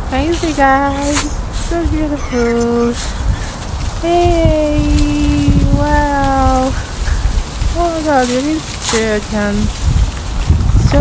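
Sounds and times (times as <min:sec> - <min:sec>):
rough outdoor rumble: 0:00.0 - 0:11.0.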